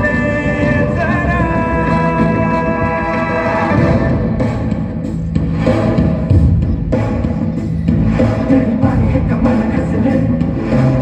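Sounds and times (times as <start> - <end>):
loud dance music with deep bass: 0.1 - 11.0.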